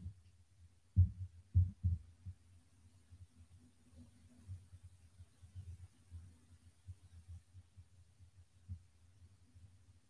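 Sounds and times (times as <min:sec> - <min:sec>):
faint low hum: 0:00.0 - 0:10.0
dull low thumps: 0:01.0 - 0:02.4.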